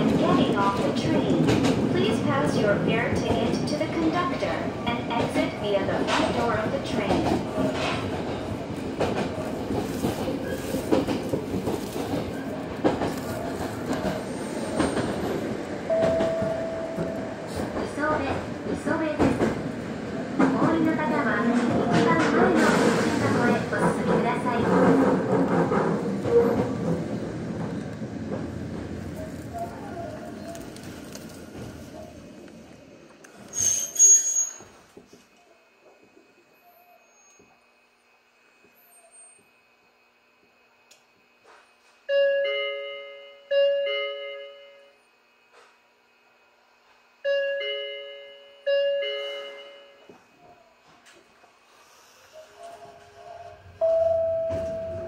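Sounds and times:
train wheel rumble and clatter: 0.0 - 36.3.

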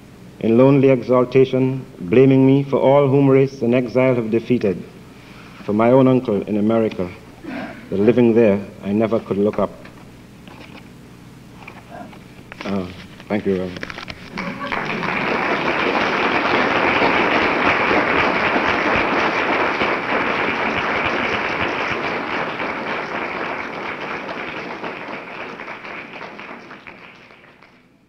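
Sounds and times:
audience applauding: 14.3 - 27.9.

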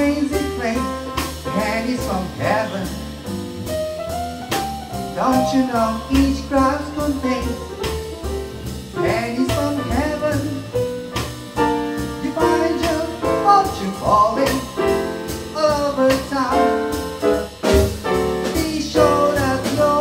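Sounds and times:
jazz combo playing swing: 0.0 - 20.0
person singing: 5.2 - 7.7, 9.0 - 10.7, 12.2 - 16.8, 18.5 - 20.0.

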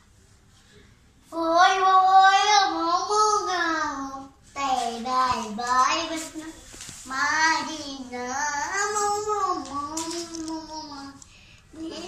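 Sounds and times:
boy singing unaccompanied: 1.3 - 12.0.

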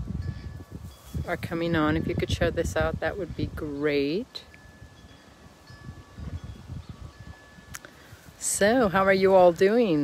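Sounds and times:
wind chime ringing softly: 4.4 - 8.3.

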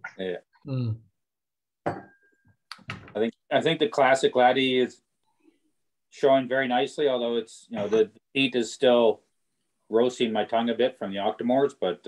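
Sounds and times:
knock on glass ringing: 1.8 - 2.2.

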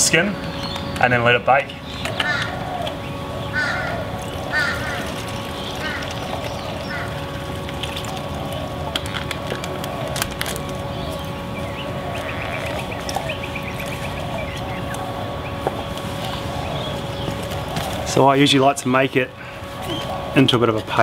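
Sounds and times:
steady background hum: 0.0 - 21.0
bird warbling chatter: 0.4 - 20.6
short bird calls: 10.9 - 18.1.

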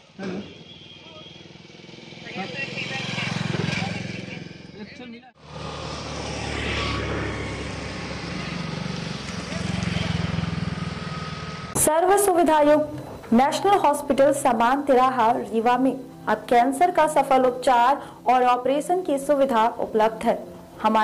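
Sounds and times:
people talking: 0.2 - 0.5, 11.8 - 21.0.

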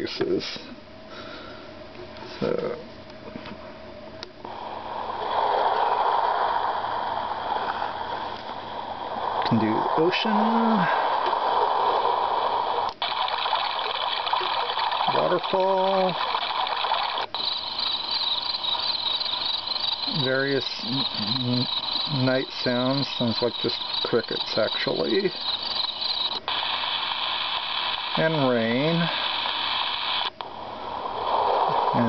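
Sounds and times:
recorded night sounds: 0.0 - 32.0
recorded rain hiss: 4.5 - 32.0
water noise from small speaker: 13.0 - 27.0.

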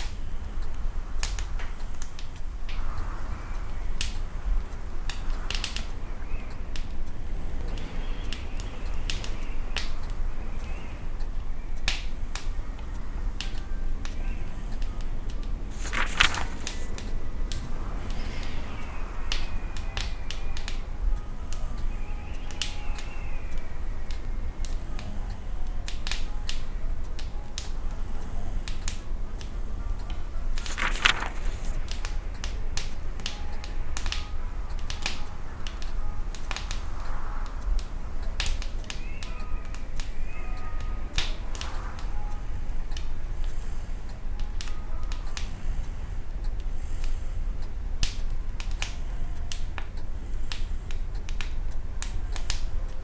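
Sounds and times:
low steady fire rumble: 0.0 - 53.0
wood fire crackling: 0.0 - 53.0.

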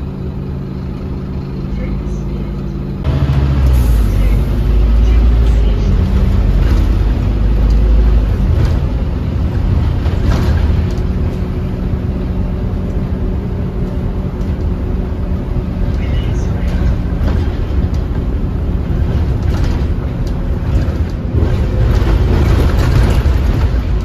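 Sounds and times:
bus engine drone: 0.0 - 24.0
road noise: 0.0 - 24.0.

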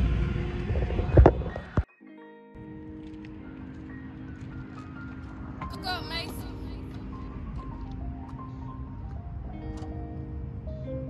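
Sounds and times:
music with sustained notes: 0.0 - 11.0.

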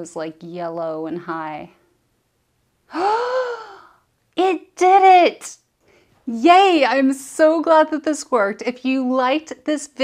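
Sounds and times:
woman gasping: 2.9 - 4.1.

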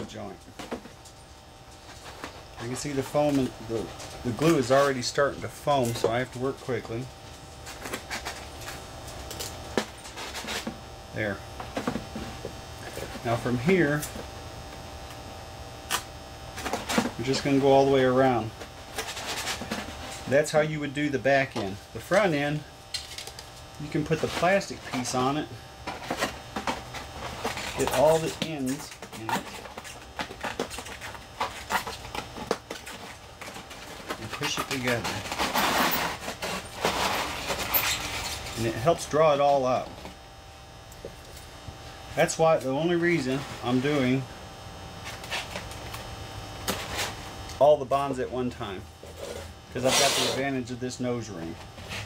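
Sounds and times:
steady low hum: 0.0 - 52.0
hands rustling tape on foam: 45.0 - 47.6
short sharp scratch: 49.2 - 50.5.

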